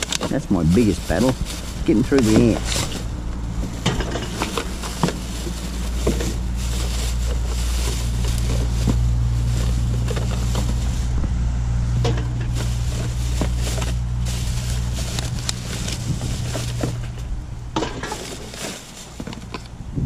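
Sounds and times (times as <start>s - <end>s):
rustling plastic bags and bottles: 0.0s - 20.0s
vehicle engine humming: 0.0s - 20.0s.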